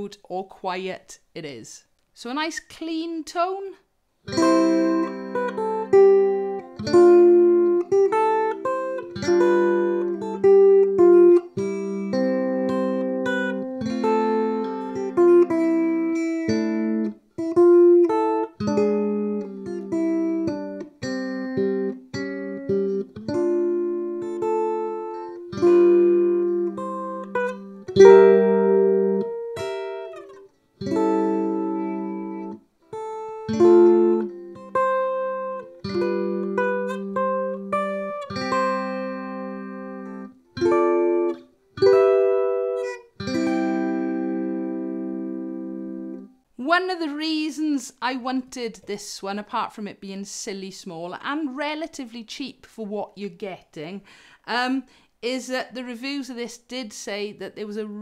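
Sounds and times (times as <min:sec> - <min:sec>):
electric ukulele chords and notes: 0:04.3 - 0:46.3.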